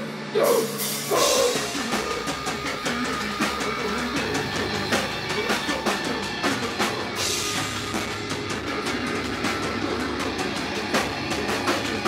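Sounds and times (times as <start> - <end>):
drum kit hits: 0.0 - 12.0
electric guitar: 0.0 - 12.0.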